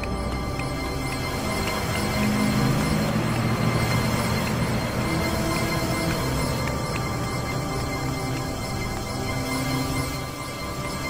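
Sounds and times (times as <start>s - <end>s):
dark tense film score: 0.0s - 11.0s.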